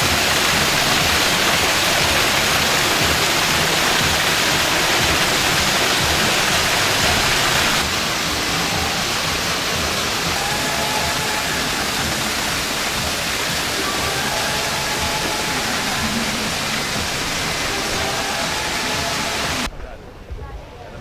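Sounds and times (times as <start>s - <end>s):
waterfall rushing: 0.0s - 19.7s.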